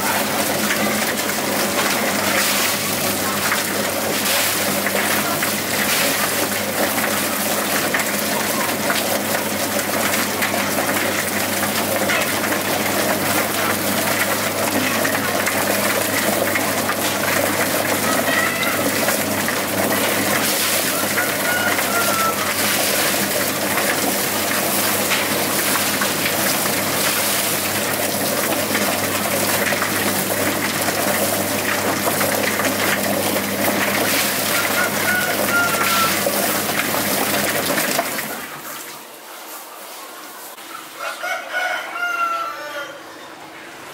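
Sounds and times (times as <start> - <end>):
plucking machine motor humming: 0.0 - 38.6.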